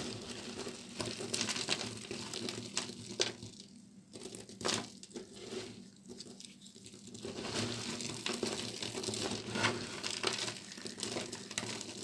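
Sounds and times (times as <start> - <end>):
soap shavings crackling: 10.0 - 12.0.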